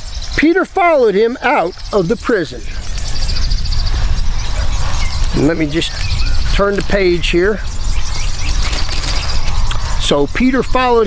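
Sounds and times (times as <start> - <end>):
faint high chirping: 0.0 - 11.0
wind rumbling on microphone: 0.0 - 11.0.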